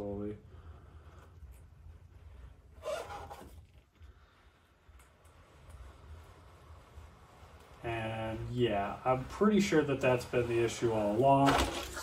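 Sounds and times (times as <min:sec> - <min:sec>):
scraper smearing wet paint: 0:04.2 - 0:11.1.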